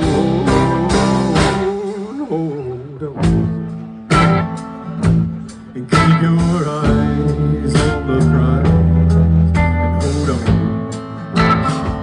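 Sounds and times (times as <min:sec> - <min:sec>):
live band with amplified guitars: 0:00.0 - 0:12.0.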